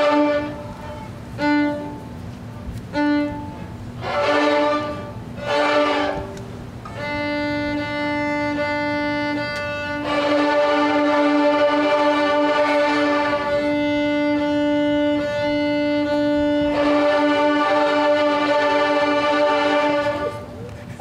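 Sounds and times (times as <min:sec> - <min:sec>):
violins playing short bow strokes: 0:00.0 - 0:20.8.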